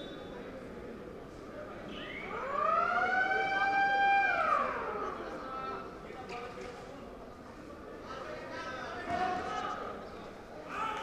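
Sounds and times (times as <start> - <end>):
siren-like wailing tone: 2.3 - 4.9.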